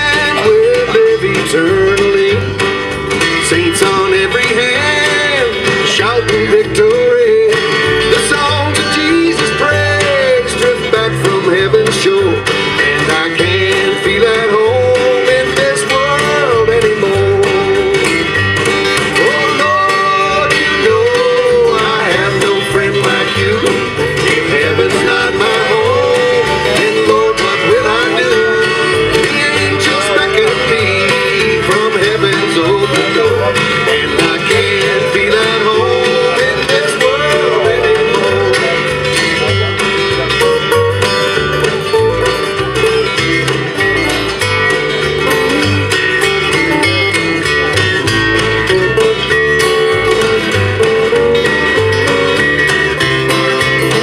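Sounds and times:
strummed acoustic guitar: 0:00.0 - 0:54.0
upright bass: 0:00.0 - 0:54.0.

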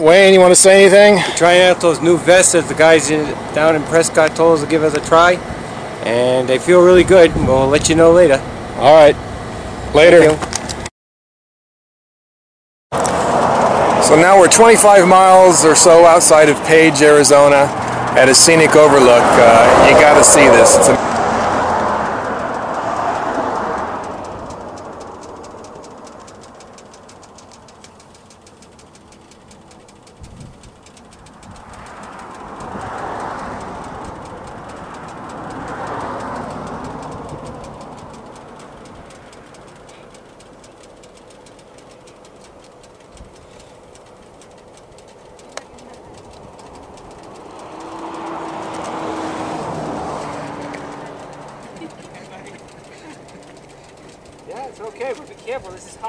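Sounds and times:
road traffic passing: 0:00.0 - 0:10.9, 0:12.9 - 0:56.0
vehicle engine passing by: 0:13.0 - 0:42.5, 0:43.5 - 0:56.0.

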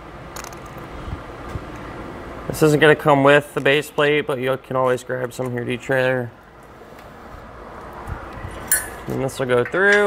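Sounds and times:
sharp metallic clink: 0:08.7 - 0:09.1.

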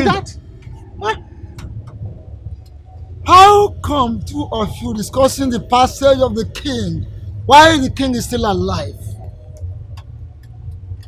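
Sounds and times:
man speaking: 0:00.0 - 0:00.4, 0:01.0 - 0:01.2, 0:03.3 - 0:09.1
low background rumble: 0:00.0 - 0:11.0.

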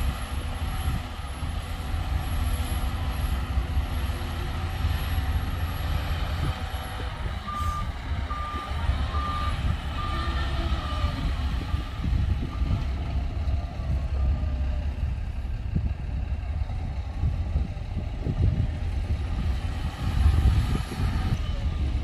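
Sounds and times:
diesel machinery rumbling: 0:00.0 - 0:22.0
reversing alarm beeps: 0:07.4 - 0:10.4.

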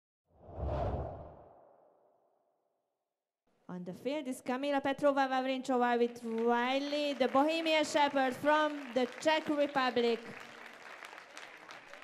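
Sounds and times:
deep whoosh: 0:00.4 - 0:02.0.

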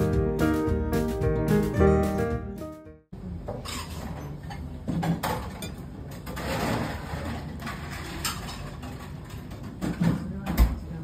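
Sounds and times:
dishes and cutlery clinking: 0:03.5 - 0:10.4.

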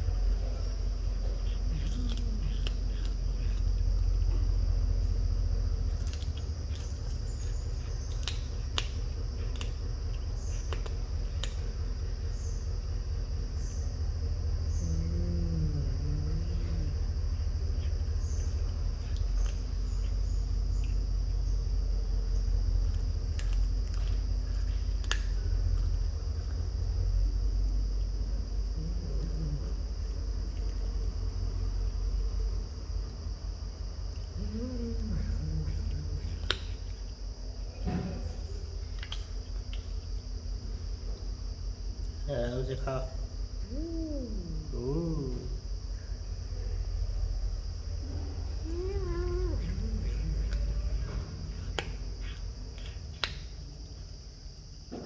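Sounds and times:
low hum: 0:00.0 - 0:55.0
cat crunching bone: 0:00.1 - 0:04.5, 0:05.6 - 0:11.8, 0:22.7 - 0:26.8, 0:49.2 - 0:54.0.

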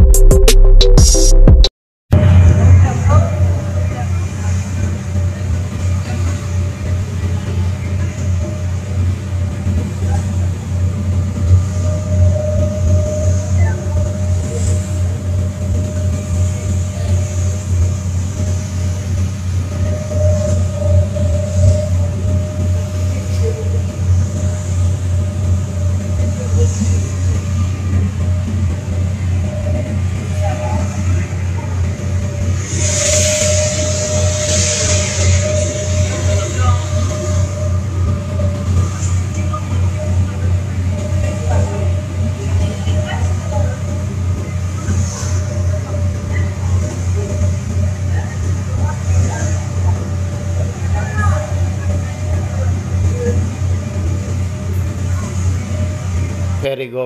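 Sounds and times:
engine whine: 0:00.0 - 0:56.7
rushing noise: 0:00.0 - 0:56.8
ferry engine drone: 0:00.0 - 0:57.0.

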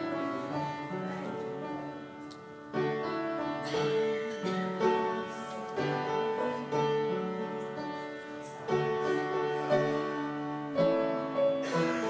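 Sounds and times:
slow solo piano piece: 0:00.0 - 0:12.0.

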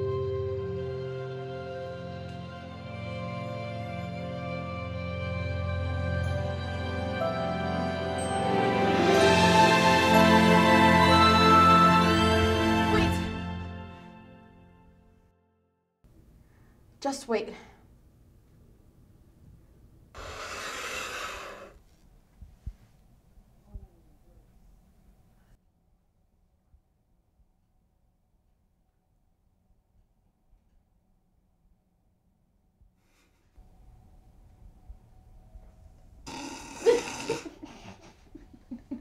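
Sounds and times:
man laughing: 0:36.7 - 0:39.0.

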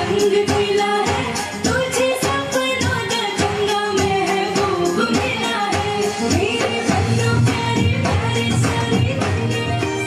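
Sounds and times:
pop song with singing: 0:00.0 - 0:10.0.

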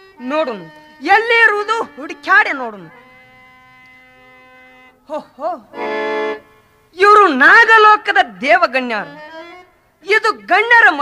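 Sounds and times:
harmonium holding a note: 0:00.0 - 0:10.4.

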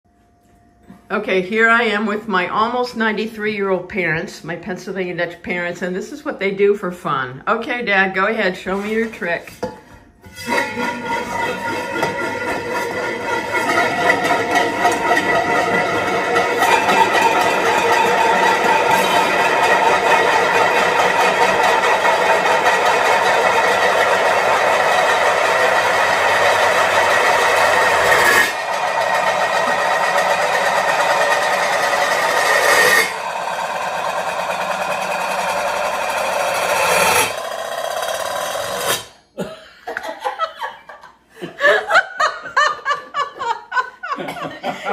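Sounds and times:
metal pot lids rattling: 0:10.3 - 0:26.2.

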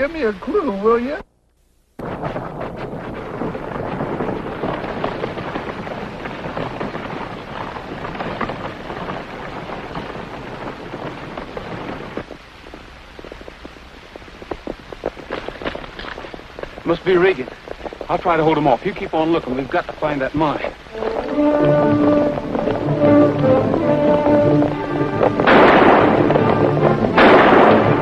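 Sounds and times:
horses galloping: 0:02.0 - 0:28.0.

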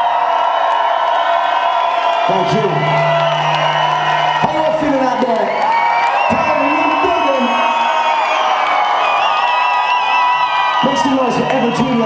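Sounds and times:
crowd cheering and whooping: 0:00.0 - 0:12.0
electronic band music: 0:02.3 - 0:07.7.

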